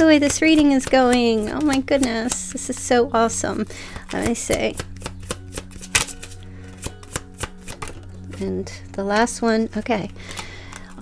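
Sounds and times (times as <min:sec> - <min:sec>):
cards being shuffled: 0:03.9 - 0:08.4, 0:10.0 - 0:11.0.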